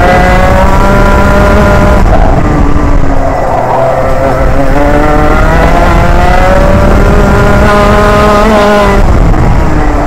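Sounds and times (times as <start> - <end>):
kart engine running hard: 0.0 - 10.0.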